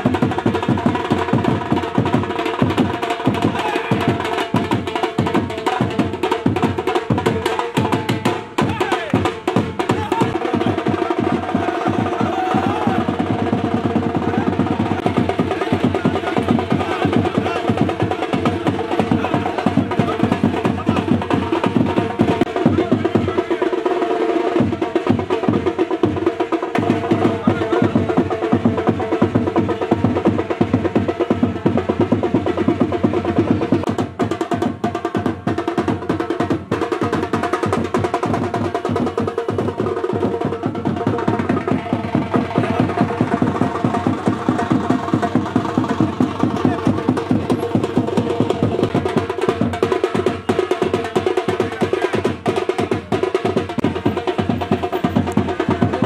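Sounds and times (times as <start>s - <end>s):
loud fast drumming: 0.0s - 56.0s
music: 0.0s - 56.0s
crowd voices: 9.8s - 23.8s.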